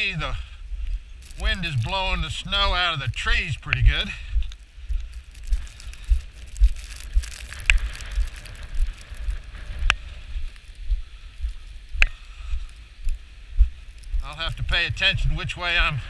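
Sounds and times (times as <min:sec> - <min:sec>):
footsteps in deep snow: 0:00.0 - 0:16.0
wind on microphone: 0:00.0 - 0:16.0
sharp clicks: 0:03.1 - 0:04.6, 0:05.5 - 0:08.9, 0:12.0 - 0:12.3.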